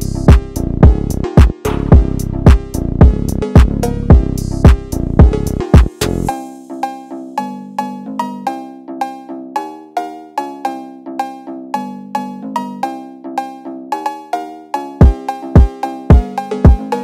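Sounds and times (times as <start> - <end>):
cowbell melody: 5.3 - 17.0.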